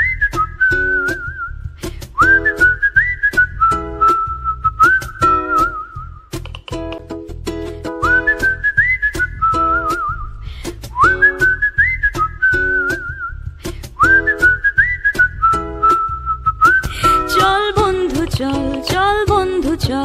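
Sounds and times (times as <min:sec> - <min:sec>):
whistled melody: 0:00.0 - 0:06.4, 0:07.9 - 0:17.5
bass: 0:00.0 - 0:20.0
plucked string chords: 0:06.3 - 0:11.7, 0:16.9 - 0:20.0.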